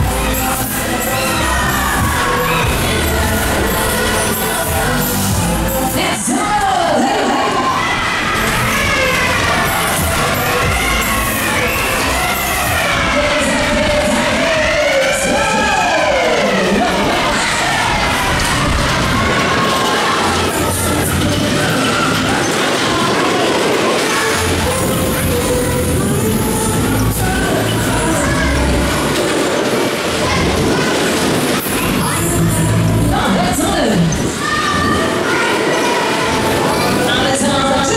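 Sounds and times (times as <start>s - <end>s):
loud fairground ride music: 0.0s - 37.9s
roller coaster wheels rumbling on rails: 0.0s - 37.9s.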